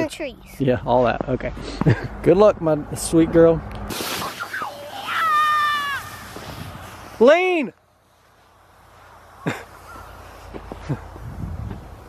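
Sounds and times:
sled sliding on snow: 3.9 - 12.0
child squealing: 4.4 - 6.3.

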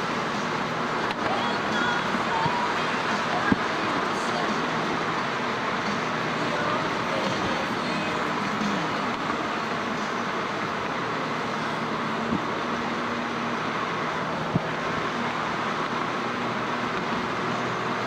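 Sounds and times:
car road noise on highway: 0.0 - 18.0.

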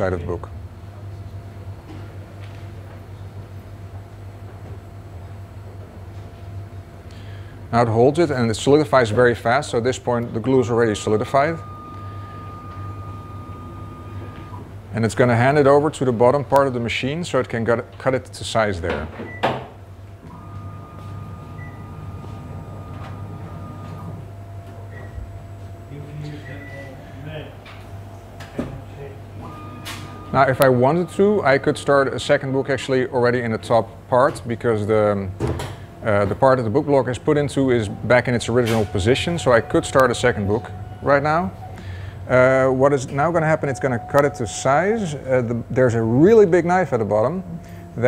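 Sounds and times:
machine mechanical hum: 0.0 - 48.0
faint steady tones: 9.4 - 15.9, 20.3 - 35.2, 35.9 - 48.0.

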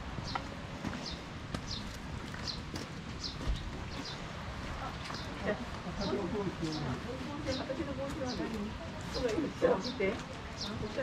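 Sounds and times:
footsteps on wet path: 0.1 - 11.0.

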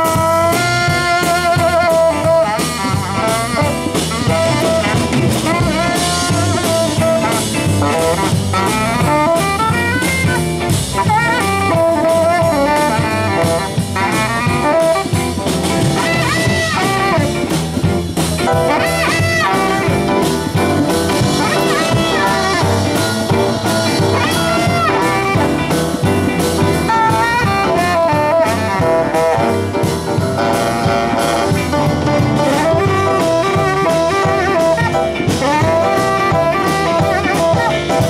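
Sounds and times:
drums: 0.0 - 38.0
electric guitar: 0.0 - 38.0
tenor saxophone solo: 0.0 - 38.0.

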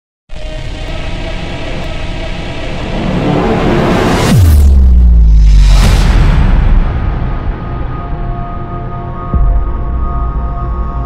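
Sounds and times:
rumbling music build-up: 0.3 - 11.0.

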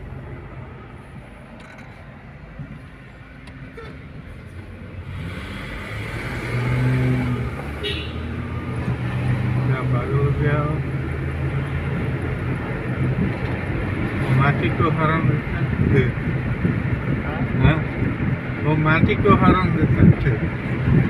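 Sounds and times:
car engine and road hum: 0.0 - 21.0.

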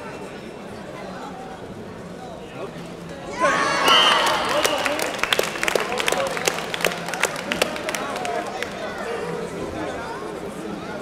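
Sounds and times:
crowd chatter: 0.0 - 11.0
spectators clapping: 3.8 - 9.1.

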